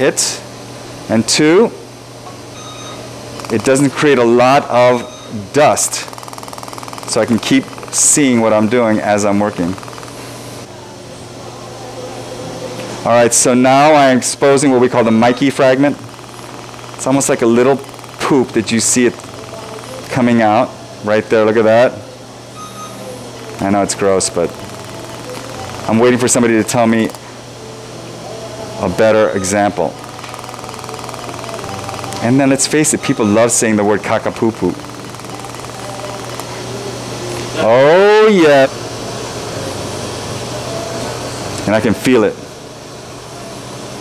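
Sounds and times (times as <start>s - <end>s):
equipment humming with hiss: 0.0s - 44.0s
fast buzzing pulse: 5.8s - 10.3s, 15.3s - 20.2s, 23.4s - 27.2s, 29.8s - 37.0s.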